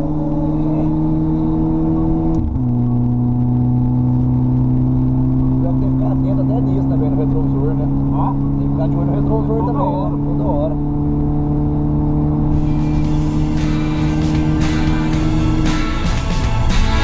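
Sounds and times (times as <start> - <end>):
car engine droning: 0.0 - 17.0
music: 12.5 - 17.0.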